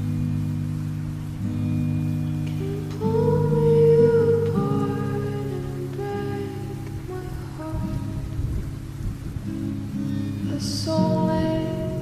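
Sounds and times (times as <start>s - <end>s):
slowed reverb-heavy pop song: 0.0s - 12.0s
steady rain: 0.0s - 12.0s.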